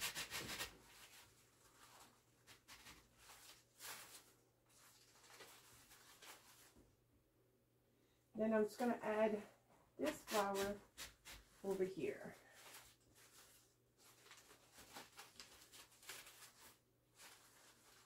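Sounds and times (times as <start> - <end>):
rustling of ribbon and flower stems: 0.9 - 6.8, 11.6 - 18.0.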